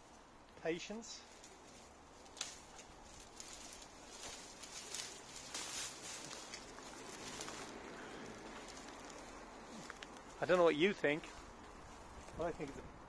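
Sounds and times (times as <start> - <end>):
dry branches rustling: 0.0 - 13.0
branches snapping: 1.3 - 10.6.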